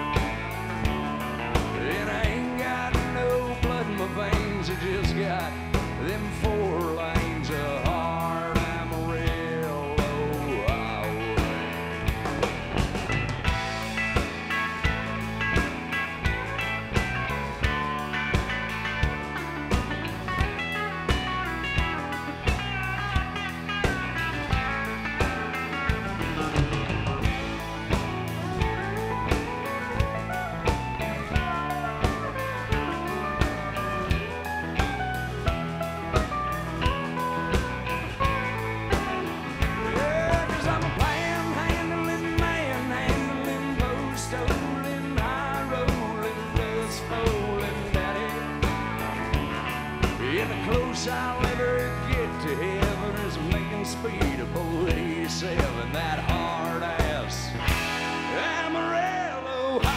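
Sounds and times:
bass guitar: 0:00.0 - 0:59.9
drums steady beat: 0:00.0 - 0:59.9
electric guitar lead: 0:00.0 - 0:59.9.

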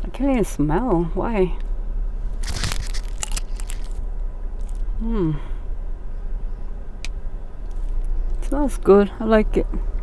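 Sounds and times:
plastic packaging crinkling: 0:02.4 - 0:04.0.

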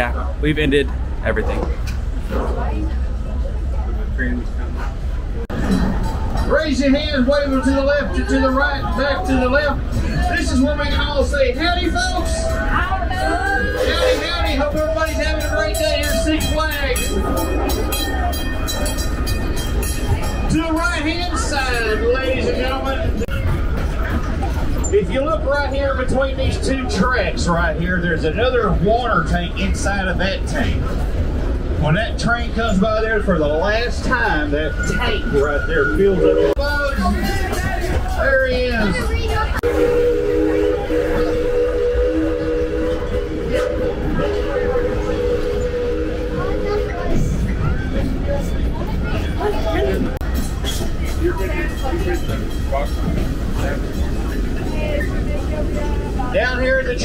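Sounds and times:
train car rumbling on track: 0:00.0 - 0:57.0
steam train whistle: 0:13.2 - 0:14.6, 0:39.6 - 0:47.5.

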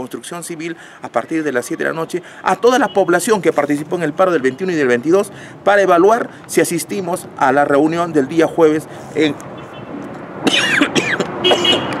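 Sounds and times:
man coughing: 0:10.4 - 0:11.9.

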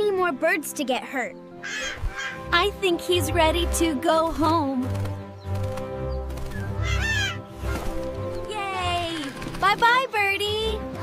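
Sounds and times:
background music: 0:00.0 - 0:11.0
cartoon bird squawk: 0:01.6 - 0:02.4, 0:06.8 - 0:07.4.

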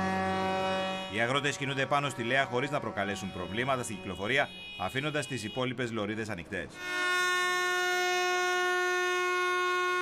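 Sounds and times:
vehicle horn blast: 0:00.0 - 0:05.9, 0:06.7 - 0:10.0.

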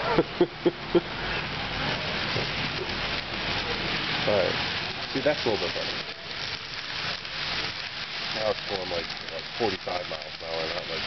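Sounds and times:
model train rolling on track: 0:00.7 - 0:11.0.

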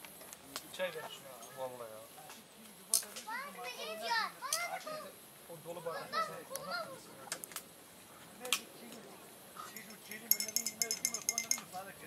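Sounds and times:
children calling out: 0:03.3 - 0:05.2, 0:05.8 - 0:07.3.

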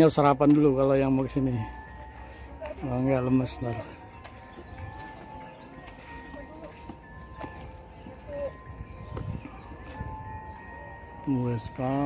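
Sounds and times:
distant music: 0:00.0 - 0:12.0
faint footsteps: 0:00.2 - 0:11.8
wind rumbling on microphone: 0:07.3 - 0:11.2.

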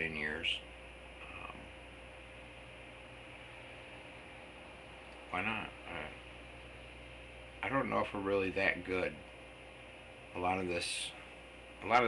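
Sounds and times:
microphone hiss and hum: 0:00.0 - 0:12.0.

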